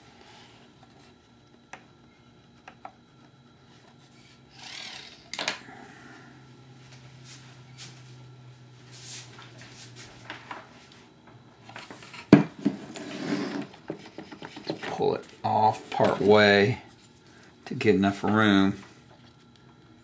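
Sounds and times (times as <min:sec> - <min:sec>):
faint low hum: 0:00.0 - 0:20.0.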